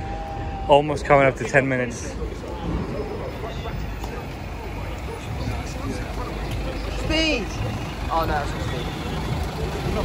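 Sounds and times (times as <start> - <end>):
faint voices of people: 0.0 - 10.0
traffic noise from passing cars: 0.0 - 10.0.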